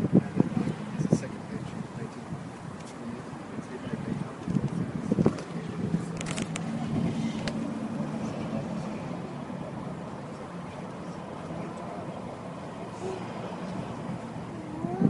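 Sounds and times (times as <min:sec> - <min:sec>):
street traffic: 0:00.0 - 0:15.0
vehicle engine humming: 0:00.0 - 0:15.0.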